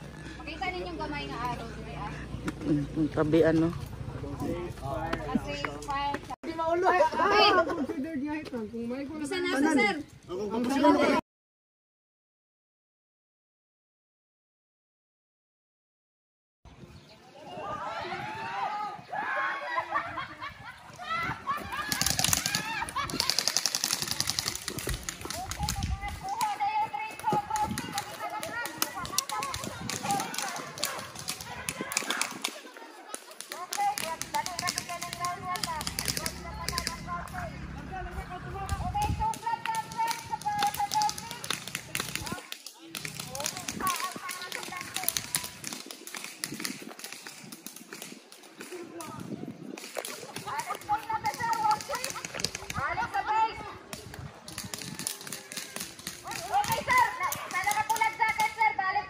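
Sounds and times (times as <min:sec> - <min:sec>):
people calling out: 0:17.4 - 0:46.1, 0:50.0 - 0:59.0
sharp clicks: 0:21.9 - 0:26.5, 0:27.6 - 0:37.4.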